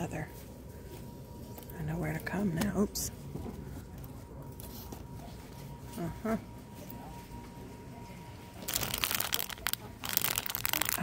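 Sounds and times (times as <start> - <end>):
faint steady whine: 0.0 - 11.0
plastic bag crinkling: 8.6 - 11.0.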